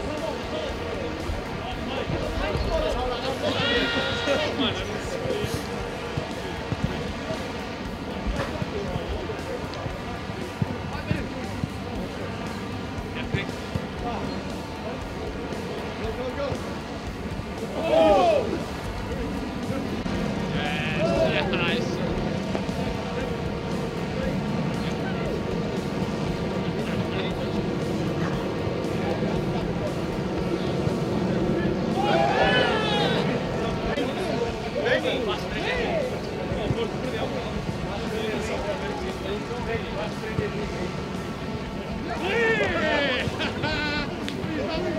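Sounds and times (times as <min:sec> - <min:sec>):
players shouting: 0:00.1 - 0:44.9.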